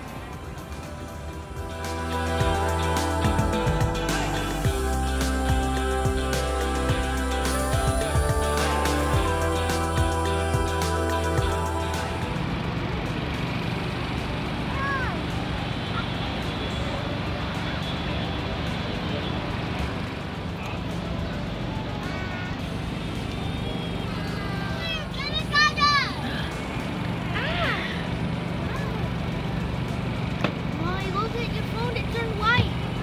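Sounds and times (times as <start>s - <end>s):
low hum: 0.0s - 14.8s.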